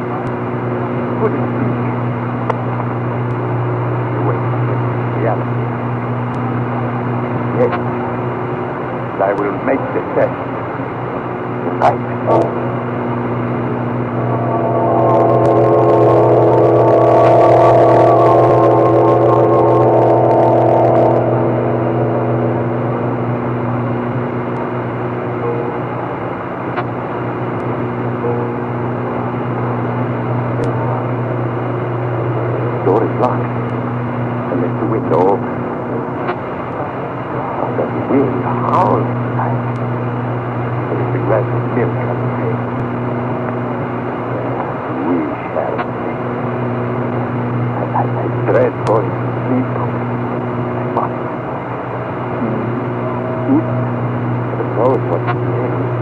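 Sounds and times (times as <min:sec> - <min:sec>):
organ drone: 0:00.0 - 0:56.0
wavering organ chord: 0:00.0 - 0:56.0.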